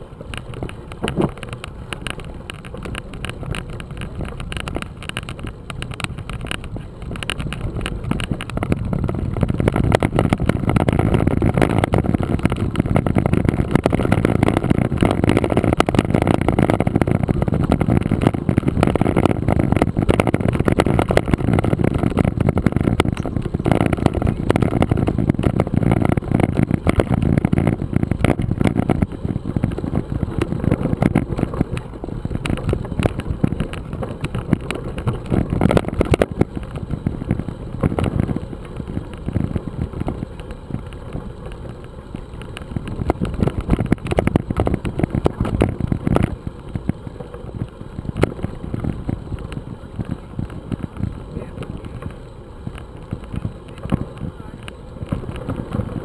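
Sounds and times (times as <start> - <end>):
bike tyres rumbling on gravel: 0.0 - 56.0
wind buffeting microphone: 0.0 - 56.0.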